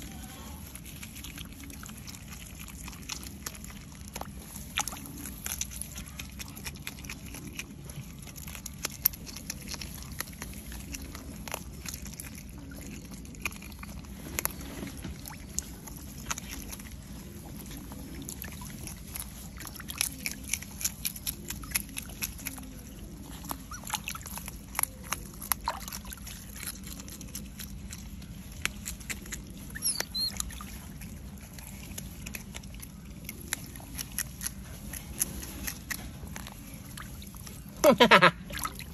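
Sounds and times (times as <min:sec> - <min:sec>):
otter crunching fish: 0:00.0 - 0:38.9.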